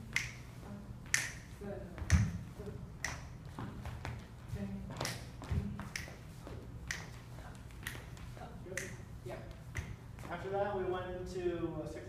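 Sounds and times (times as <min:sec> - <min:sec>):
finger snaps: 0:00.1 - 0:00.4, 0:01.1 - 0:01.4, 0:03.0 - 0:03.2, 0:05.8 - 0:06.2, 0:06.8 - 0:07.2, 0:09.8 - 0:10.0.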